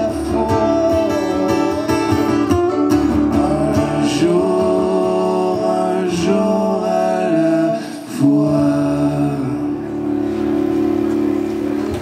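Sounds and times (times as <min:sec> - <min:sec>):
men singing in harmony: 0:03.2 - 0:09.8.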